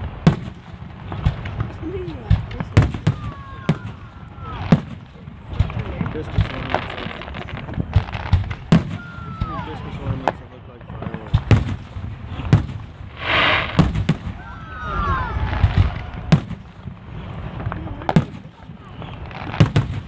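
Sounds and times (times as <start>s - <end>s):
hissing rush: 11.8s - 19.6s
fireworks shells bursting: 12.6s - 14.4s.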